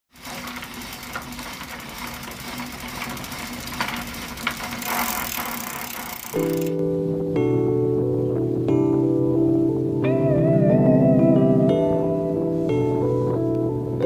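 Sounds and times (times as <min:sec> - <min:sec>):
background music of held chords: 0:06.7 - 0:14.0.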